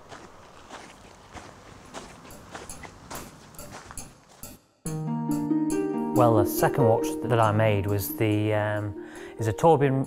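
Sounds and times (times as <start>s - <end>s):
footsteps crunching on gravel: 0.0s - 4.6s.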